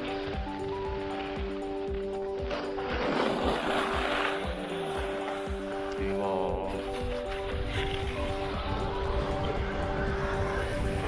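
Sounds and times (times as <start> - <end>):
background music with beat: 0.0 - 11.0
skis scraping over snow: 0.0 - 11.0.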